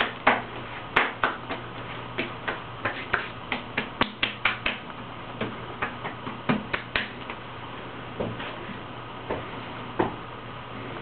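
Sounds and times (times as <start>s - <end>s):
palms slapping skin: 2.2s - 7.4s.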